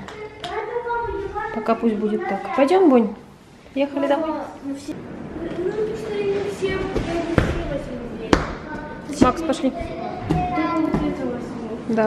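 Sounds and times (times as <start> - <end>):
background talking: 0.0 - 12.0.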